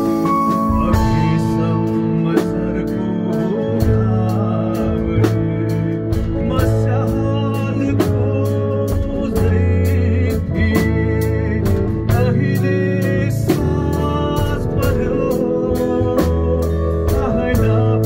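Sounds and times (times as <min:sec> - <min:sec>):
acoustic guitar strumming: 0:00.0 - 0:18.0
drum kit beat: 0:00.0 - 0:18.0
electric bass: 0:00.0 - 0:18.0
man singing: 0:00.0 - 0:18.0.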